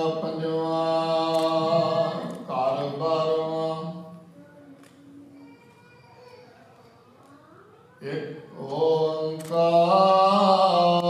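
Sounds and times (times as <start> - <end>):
man chanting a prayer: 0.0 - 4.2, 8.0 - 11.0.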